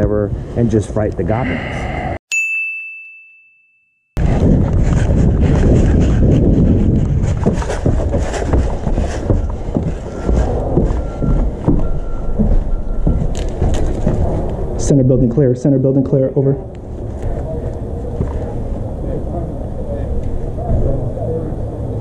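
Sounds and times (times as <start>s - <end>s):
bell-like ding: 2.3s - 4.0s
steady low rumble: 4.2s - 22.0s
footfalls on plank floor: 4.4s - 14.4s.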